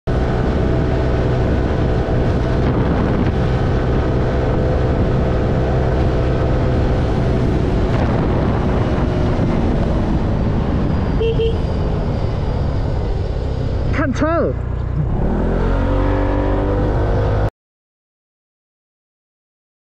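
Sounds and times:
wind noise on microphone: 0.1s - 14.0s.

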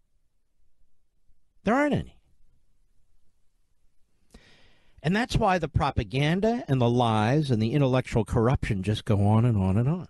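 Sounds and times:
man breathing in: 4.2s - 5.0s.

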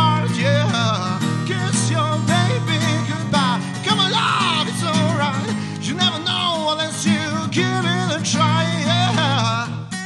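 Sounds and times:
acoustic guitar strumming: 0.0s - 10.0s
man singing: 0.0s - 10.0s.

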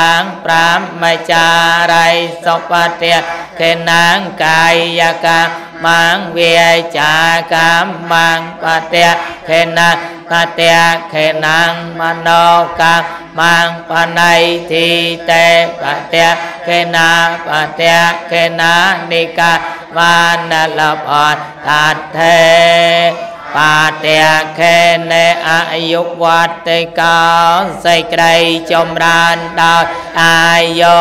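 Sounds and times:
man chanting into a microphone: 0.0s - 31.0s.

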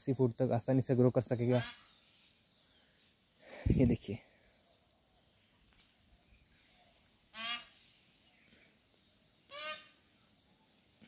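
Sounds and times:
bird calling: 1.4s - 3.0s, 5.8s - 8.7s, 9.5s - 10.7s.

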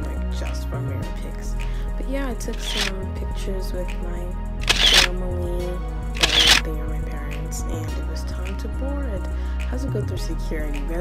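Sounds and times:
background music with bass line: 0.0s - 11.0s
camera shutter sound effect: 2.5s - 2.9s, 4.6s - 5.1s, 6.2s - 6.6s.

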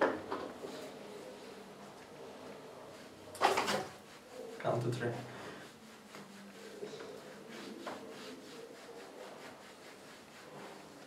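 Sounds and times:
hand rubbing wax strip on skin: 2.8s - 11.0s.

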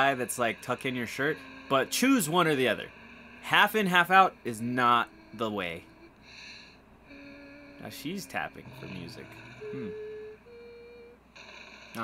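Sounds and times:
person humming: 7.1s - 10.3s.

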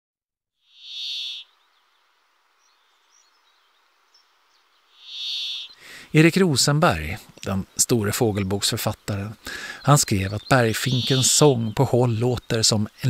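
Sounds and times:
bird buzzy wheezing song: 0.7s - 1.5s, 4.9s - 6.2s, 9.4s - 10.0s, 10.7s - 11.8s.

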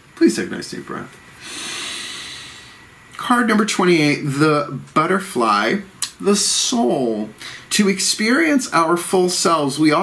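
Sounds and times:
man taking deep breath: 1.4s - 2.8s.

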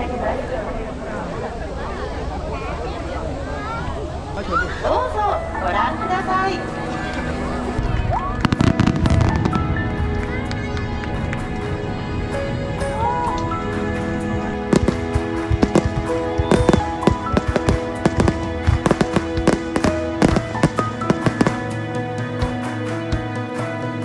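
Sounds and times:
music with long held notes: 5.4s - 24.0s
fireworks bangs and crackles: 8.2s - 22.6s.

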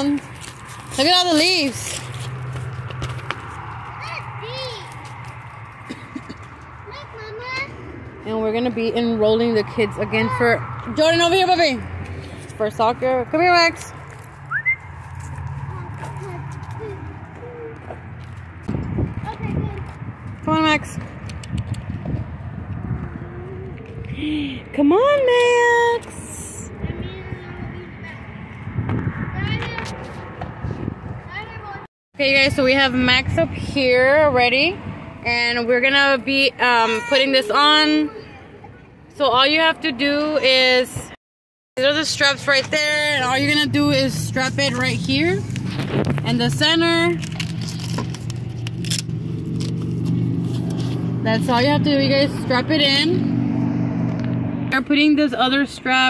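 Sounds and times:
footsteps on asphalt: 0.0s - 8.4s, 10.3s - 24.9s, 43.4s - 51.8s
low outdoor rumble: 41.8s - 56.0s.

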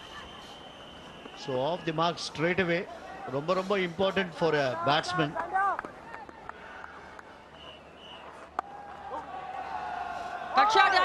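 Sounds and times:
faint outdoor ambience: 0.0s - 11.0s.

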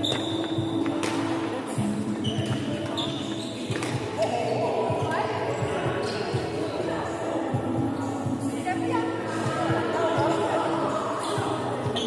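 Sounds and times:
sneaker squeaks: 0.0s - 1.2s, 2.1s - 4.2s, 11.2s - 12.0s
players' voices: 0.8s - 12.0s
racket hitting shuttlecock: 1.0s - 1.3s, 3.7s - 4.0s.

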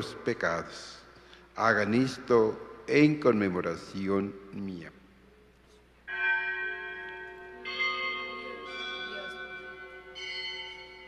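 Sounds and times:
church bells ringing: 0.0s - 0.4s, 6.1s - 11.0s.

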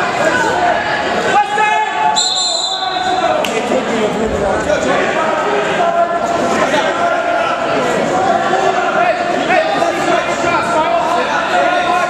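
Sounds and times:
spectators' voices: 0.0s - 12.0s
referee's whistle: 2.2s - 3.2s.

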